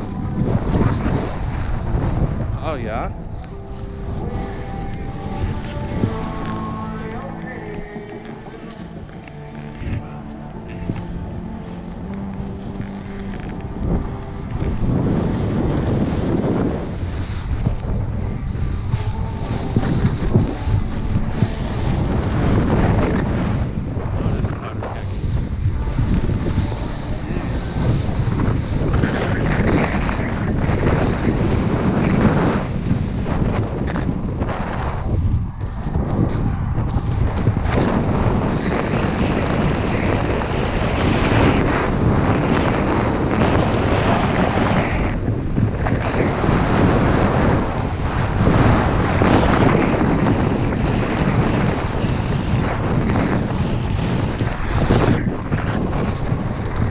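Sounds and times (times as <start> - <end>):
skis sliding on snow: 0.0 - 2.5, 3.3 - 56.9
wind rushing over microphone: 0.0 - 56.9.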